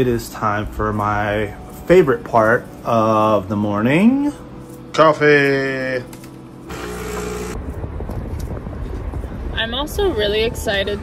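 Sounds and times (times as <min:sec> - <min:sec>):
burst of noise with hum: 0:06.7 - 0:08.2.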